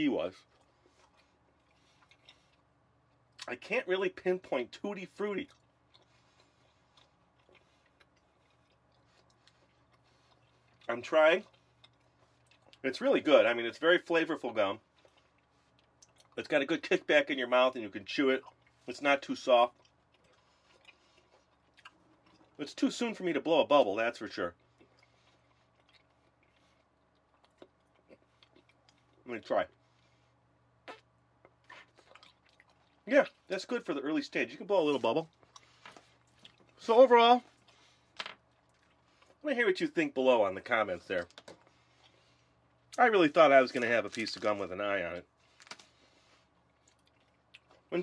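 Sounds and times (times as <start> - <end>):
mouth clicks chewing gum: 30.8 - 33.0.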